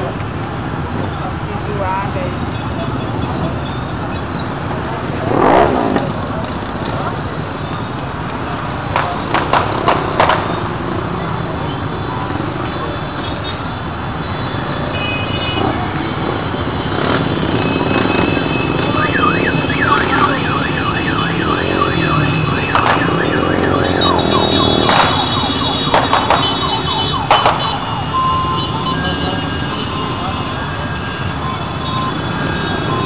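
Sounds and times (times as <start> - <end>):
motorcycles running and passing: 0.0 - 33.0
siren sweeping up and down: 17.8 - 33.0.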